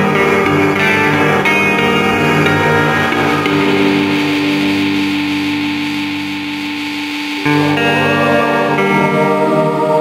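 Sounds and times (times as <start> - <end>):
electric guitar chord ringing: 0.0 - 10.0.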